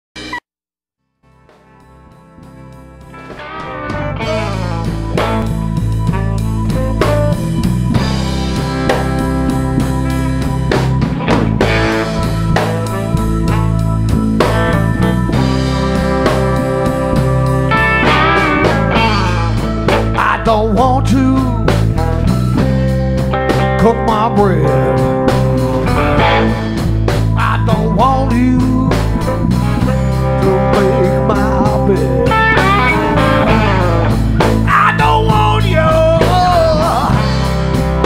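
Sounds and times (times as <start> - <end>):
blues band playing: 1.3 - 38.0.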